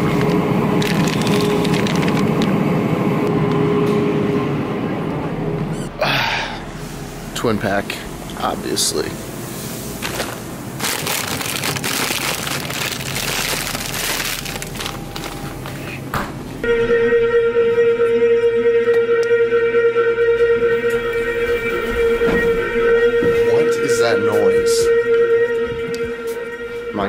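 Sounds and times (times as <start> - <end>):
elevator droning tone: 0.0 - 9.9, 13.1 - 27.0.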